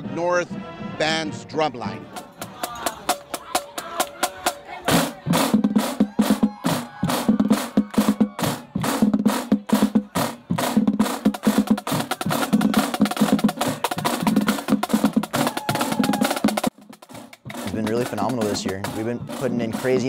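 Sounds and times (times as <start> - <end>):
marching snare drums: 1.7 - 20.0.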